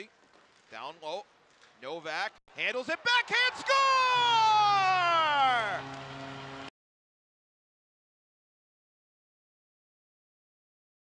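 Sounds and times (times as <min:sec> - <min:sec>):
announcer shouting goal call: 0:02.6 - 0:05.9.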